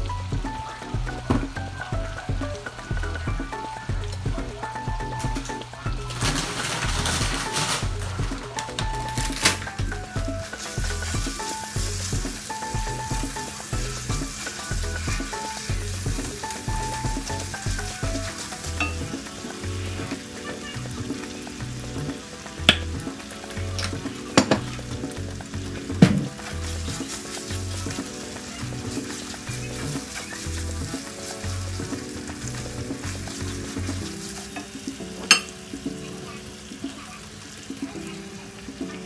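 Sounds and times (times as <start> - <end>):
spatula stirring meat: 0.0 - 36.0
meat sizzling in a skillet: 0.0 - 39.0.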